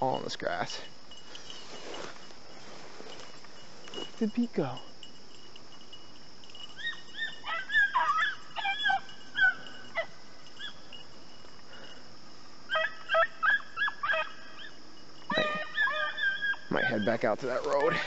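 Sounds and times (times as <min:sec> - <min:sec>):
hounds barking and yelping: 0:04.9 - 0:18.0.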